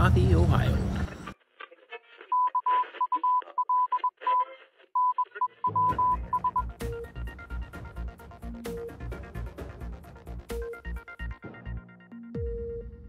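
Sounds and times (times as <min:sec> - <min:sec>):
high beeps like morse code: 0:02.3 - 0:04.4, 0:05.0 - 0:06.7
news intro music with drums: 0:05.7 - 0:13.0.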